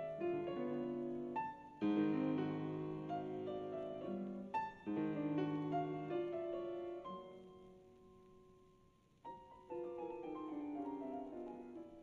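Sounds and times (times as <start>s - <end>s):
piano playing chords: 0.0s - 8.5s, 9.2s - 12.0s.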